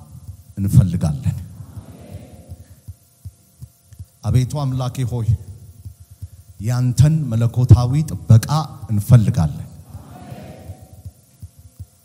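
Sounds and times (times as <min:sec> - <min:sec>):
echo tail: 0:09.8 - 0:11.2.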